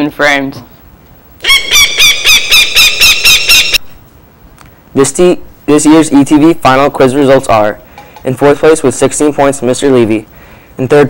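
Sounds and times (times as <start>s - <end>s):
high-pitched squawks: 1.4s - 4.0s.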